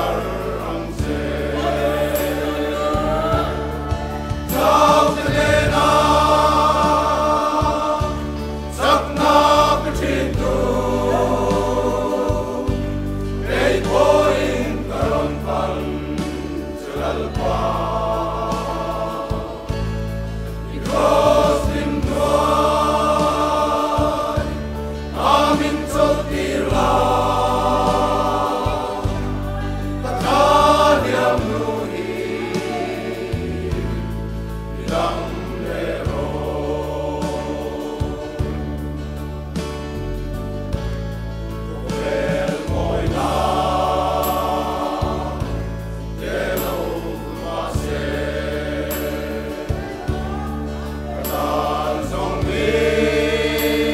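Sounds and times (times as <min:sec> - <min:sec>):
men's choir singing gospel: 0:00.0 - 0:53.9
sustained low bass notes: 0:00.0 - 0:53.9.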